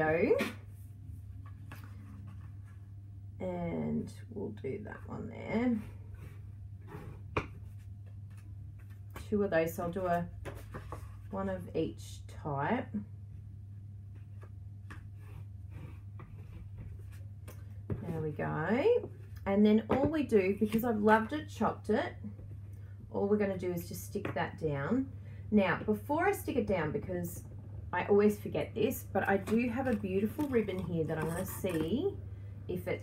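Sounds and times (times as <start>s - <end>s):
steady low hum: 0.0s - 33.0s
faint paper rustling: 0.7s - 3.0s, 29.3s - 32.1s.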